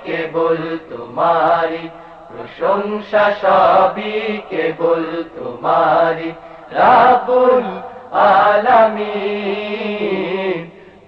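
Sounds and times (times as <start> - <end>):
person singing devotional song: 0.0 - 11.0.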